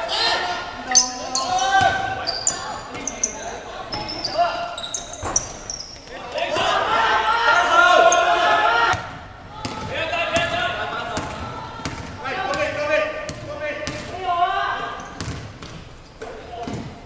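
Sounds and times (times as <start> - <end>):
players calling out: 0.0 - 15.3.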